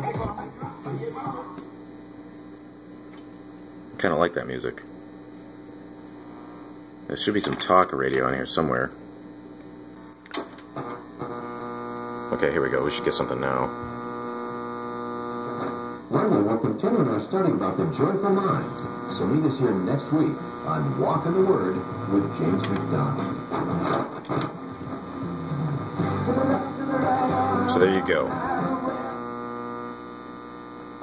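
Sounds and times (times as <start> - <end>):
radio crackle: 0.0 - 31.0
radio tuning hum: 0.0 - 31.0
steady buzzy tone: 0.0 - 31.0.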